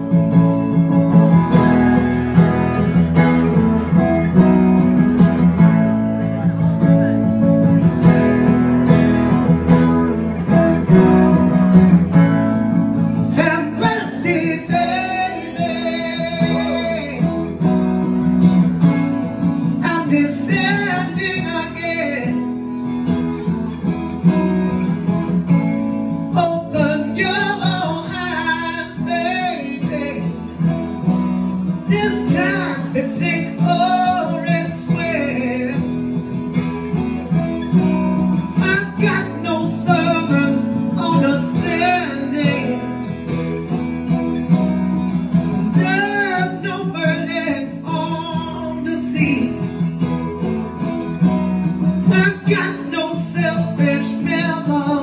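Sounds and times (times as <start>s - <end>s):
acoustic guitar: 0.0s - 55.0s
man singing: 12.5s - 18.2s, 19.0s - 22.8s, 25.8s - 30.8s, 31.7s - 36.4s, 38.4s - 43.5s, 45.3s - 50.0s, 52.0s - 55.0s.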